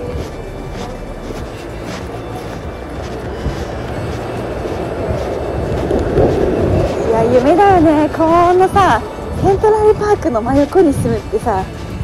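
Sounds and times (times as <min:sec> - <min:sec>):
low rumble of passing cars: 0:00.0 - 0:12.0.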